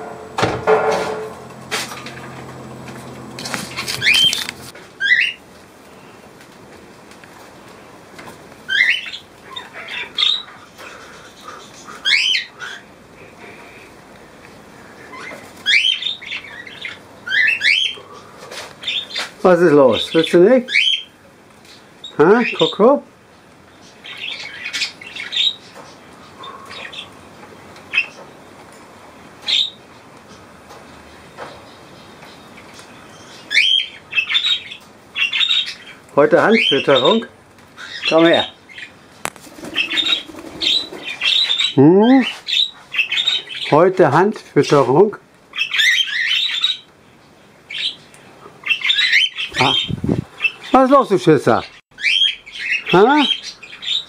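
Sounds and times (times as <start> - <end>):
parrots chattering and squawking: 0.0 - 5.4, 8.6 - 14.0, 14.7 - 23.0, 23.8 - 28.3, 29.4 - 30.5, 32.4 - 44.2, 45.4 - 46.9, 47.6 - 54.0
parakeet squawks: 3.6 - 4.4, 5.0 - 5.4, 8.7 - 12.9, 15.1 - 18.0, 39.6 - 41.8, 48.6 - 50.8.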